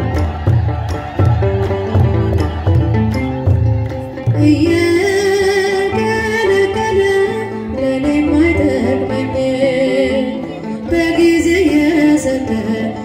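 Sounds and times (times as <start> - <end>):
instrumental accompaniment with bass: 0.0 - 13.0
woman singing a hymn: 4.4 - 13.0.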